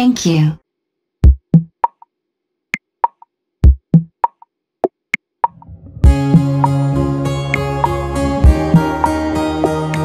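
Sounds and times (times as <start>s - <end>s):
faint low sound: 5.5s - 6.6s.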